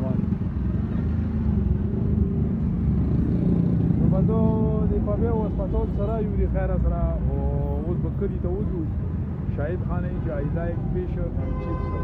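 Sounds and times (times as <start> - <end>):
vehicle engines rumbling: 0.0 - 12.0.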